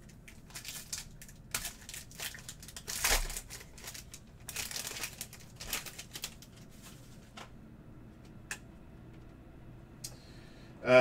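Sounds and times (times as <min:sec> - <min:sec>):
foil wrapper crinkling and tearing: 0:00.0 - 0:07.0.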